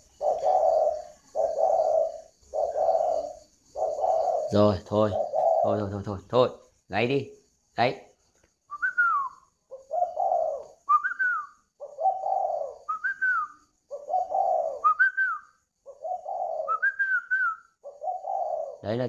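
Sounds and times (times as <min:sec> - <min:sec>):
dove cooing: 0:00.0 - 0:06.1, 0:09.7 - 0:19.0.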